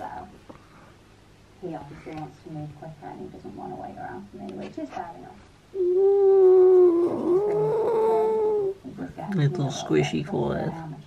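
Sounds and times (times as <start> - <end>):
dog whining: 5.8 - 8.8.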